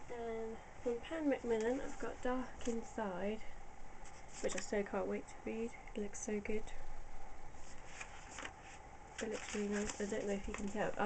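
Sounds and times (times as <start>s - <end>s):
book pages rustling: 1.6s - 2.9s, 4.0s - 4.8s, 7.6s - 11.0s
faint paper ticks: 9.2s - 11.0s.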